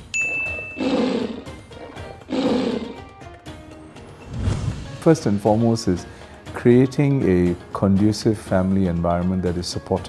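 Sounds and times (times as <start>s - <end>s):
background music: 0.0s - 10.0s
tiger roar sound effect: 0.4s - 3.1s.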